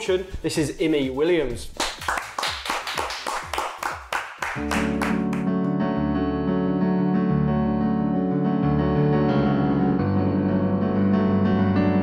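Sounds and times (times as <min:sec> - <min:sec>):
hands clapping quickly: 0:01.8 - 0:05.7.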